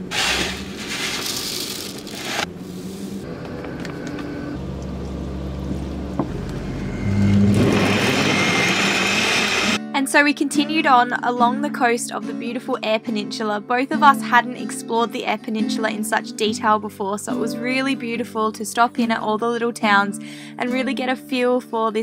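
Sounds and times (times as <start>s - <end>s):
blender motor running: 0.0s - 2.5s, 6.2s - 9.8s
powder pouring into plastic cup: 0.0s - 2.5s
background music: 9.8s - 22.0s.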